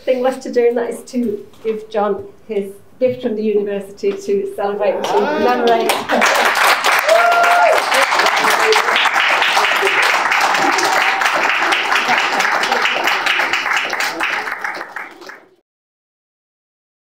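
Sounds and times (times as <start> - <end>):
voices: 0.0 - 6.1
audience applause: 5.0 - 15.6.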